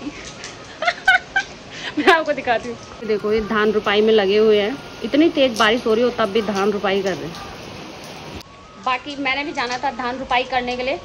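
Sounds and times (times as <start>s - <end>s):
woman giggling: 0.0s - 2.3s.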